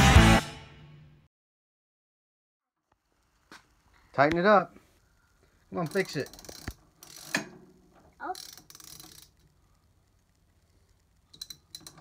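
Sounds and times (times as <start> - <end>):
ratchet wrench clicking: 5.8 - 7.4, 8.2 - 9.5, 11.3 - 12.0.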